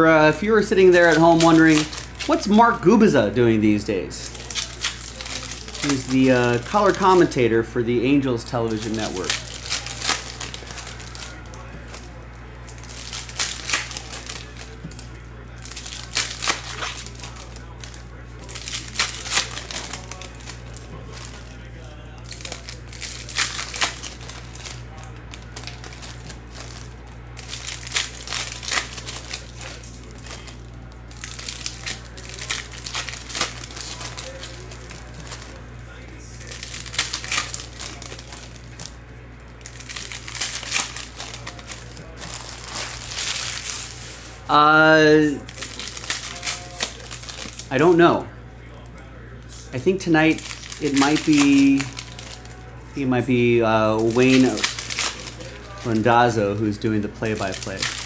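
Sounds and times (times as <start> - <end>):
foil wrappers crinkling and tearing: 0.1 - 58.0.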